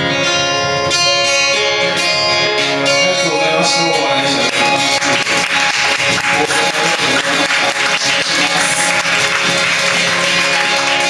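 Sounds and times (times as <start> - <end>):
acoustic guitar: 0.0 - 11.0
cajon and percussion hits: 4.5 - 11.0.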